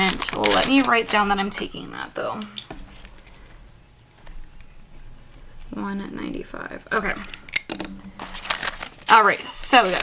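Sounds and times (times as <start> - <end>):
paper banknotes rustling: 0.0 - 1.7, 8.2 - 10.0.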